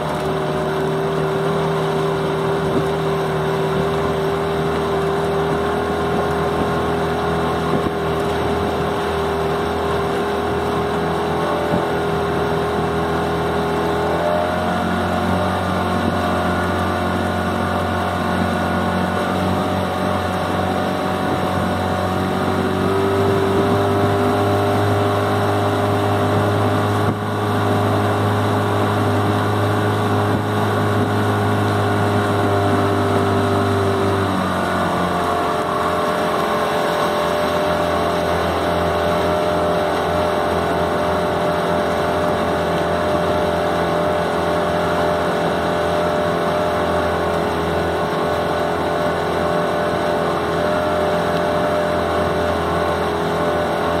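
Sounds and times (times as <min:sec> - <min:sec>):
outboard motor running: 0:00.0 - 0:54.0.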